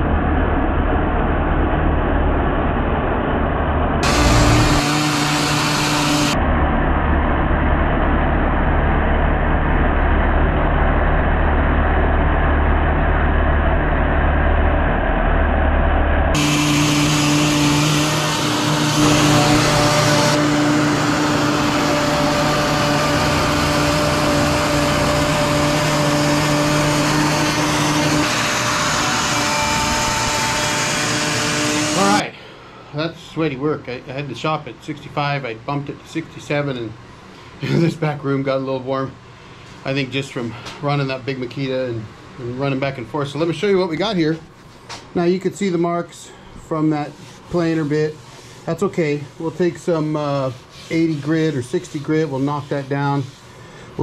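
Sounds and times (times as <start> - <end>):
router whining across wood: 4.0 - 6.4, 16.3 - 32.2.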